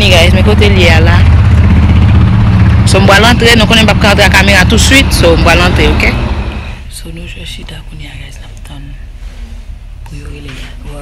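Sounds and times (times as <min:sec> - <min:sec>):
loud low rumble: 0:00.0 - 0:07.6.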